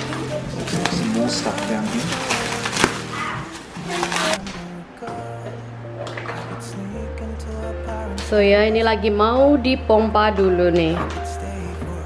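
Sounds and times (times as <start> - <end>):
plastic wrapping crinkling: 0.0 - 5.4
background music with bass line: 0.0 - 12.0.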